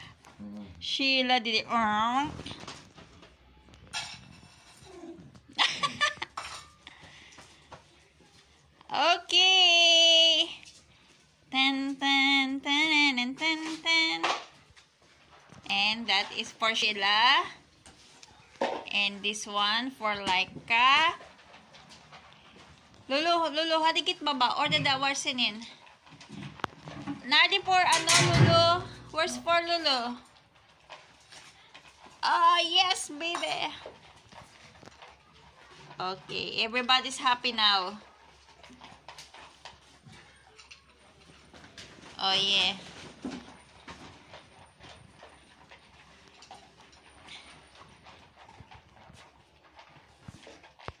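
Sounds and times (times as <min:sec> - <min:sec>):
dog crunching dry kibble: 0:01.8 - 0:08.9, 0:13.7 - 0:24.4, 0:25.0 - 0:28.1, 0:28.9 - 0:51.0
dog panting: 0:43.2 - 0:51.0.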